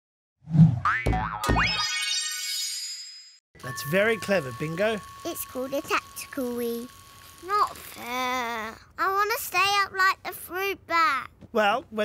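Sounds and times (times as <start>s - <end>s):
cartoon boings: 0.8s - 2.4s
bright chime ringing: 3.6s - 7.1s.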